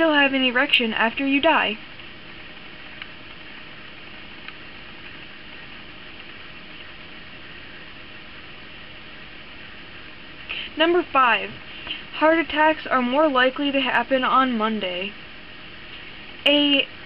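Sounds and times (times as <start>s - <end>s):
room tone hiss: 0.0s - 17.0s.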